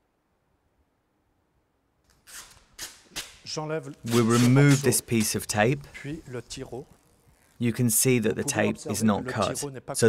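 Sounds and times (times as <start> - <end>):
vinyl film peeling off paint: 2.1 - 7.6.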